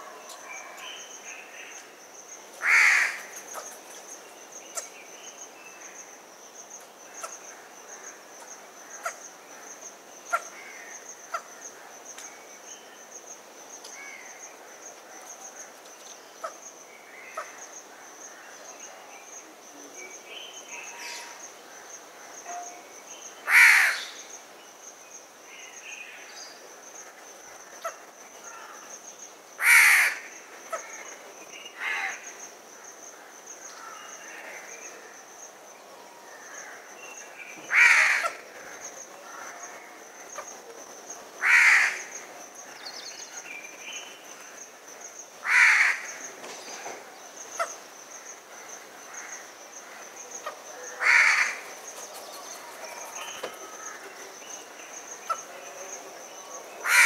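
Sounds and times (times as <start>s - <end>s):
crow cawing: 2.6s - 3.2s, 23.5s - 24.1s, 29.6s - 30.9s, 37.7s - 38.4s, 41.4s - 42.1s, 45.4s - 46.1s, 51.0s - 51.6s.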